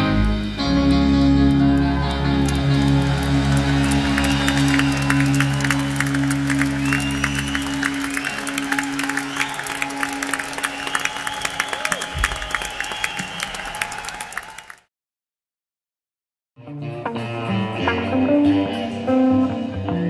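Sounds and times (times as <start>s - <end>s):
audience applauding and cheering: 0.8s - 14.9s.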